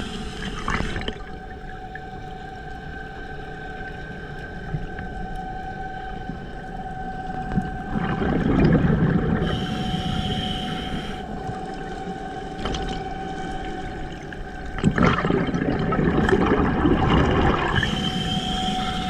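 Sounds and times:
underwater water noise: 0.0s - 19.0s
high whining tone: 1.0s - 19.0s.

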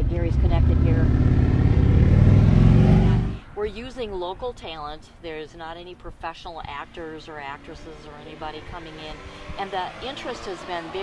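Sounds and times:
people talking: 0.0s - 1.3s, 3.6s - 11.0s
vehicle engine accelerating: 0.0s - 3.4s, 7.5s - 11.0s.

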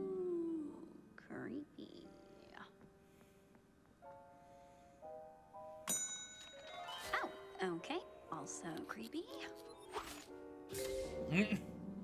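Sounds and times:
bell ding: 5.9s - 6.9s.

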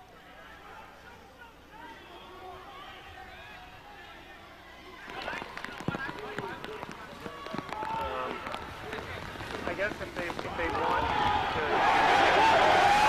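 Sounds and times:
faint voices: 0.0s - 13.0s.

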